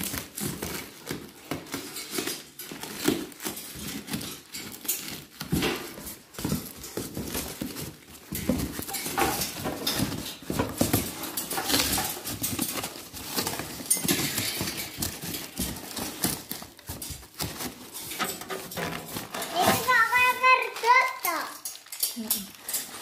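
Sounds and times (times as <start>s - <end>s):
parts knocking and clicking: 0.0s - 20.0s
cardboard flaps rustling: 0.0s - 21.4s.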